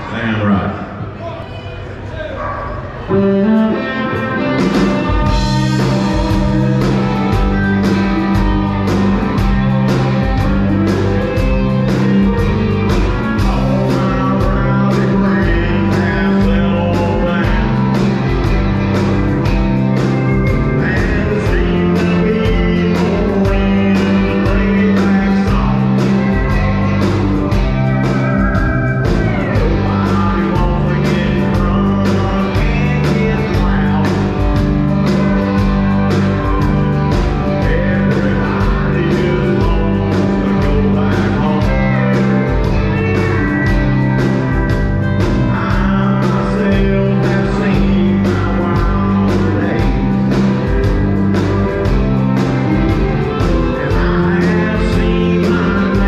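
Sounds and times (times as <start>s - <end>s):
live rock band playing: 2.8s - 56.0s.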